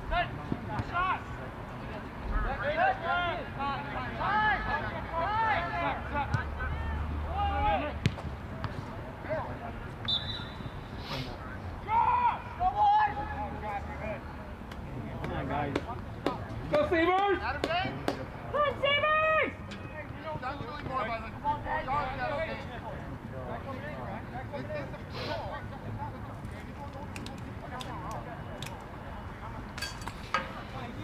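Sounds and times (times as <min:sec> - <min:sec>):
players shouting: 0:02.5 - 0:08.2, 0:11.8 - 0:13.7, 0:18.5 - 0:22.5.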